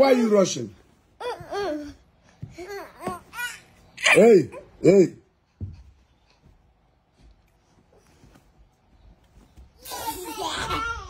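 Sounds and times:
faint rustling and handling noise: 0:00.0 - 0:04.0, 0:05.3 - 0:11.0.

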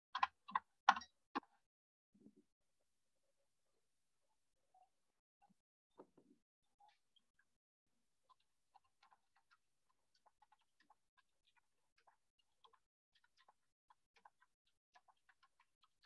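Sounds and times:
faint small clicks and ticks: 0:00.2 - 0:01.6, 0:08.2 - 0:16.0.

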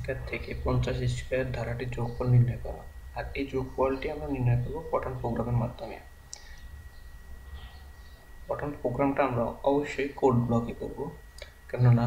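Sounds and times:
faint high-pitched whine: 0:00.0 - 0:12.0
steady low hum: 0:00.0 - 0:12.0.

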